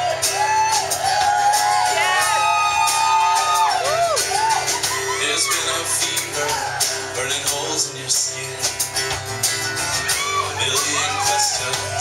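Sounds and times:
acoustic guitar: 0.0s - 12.0s
drums: 0.0s - 12.0s
keyboard: 0.0s - 12.0s.

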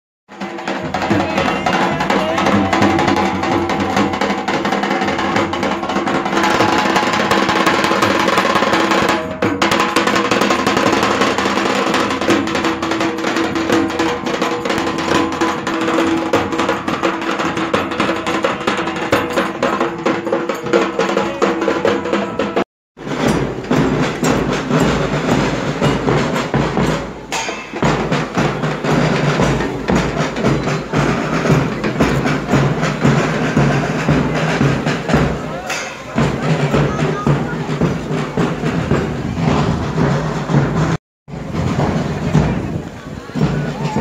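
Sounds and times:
drums beaten with sticks: 0.3s - 44.0s.

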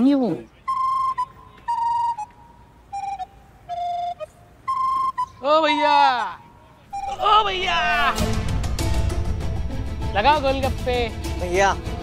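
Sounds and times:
flute-like woodwind notes: 0.6s - 6.3s, 6.9s - 8.5s.

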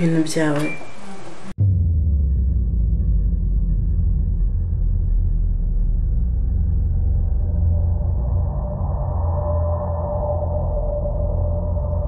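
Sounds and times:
deep steady rumble: 1.6s - 12.0s.

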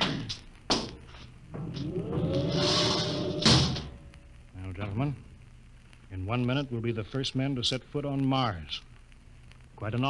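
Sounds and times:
hatch hiss with rising whine: 1.1s - 4.7s
heavy clunk: 1.6s - 4.0s.

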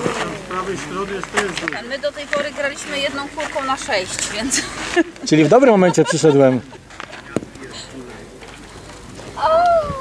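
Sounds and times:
faint voices: 0.0s - 10.0s
metal ball landing on gravel: 7.3s - 7.6s.

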